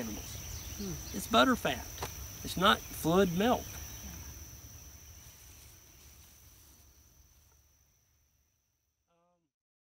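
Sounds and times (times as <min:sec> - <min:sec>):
insects droning: 0:00.0 - 0:09.5.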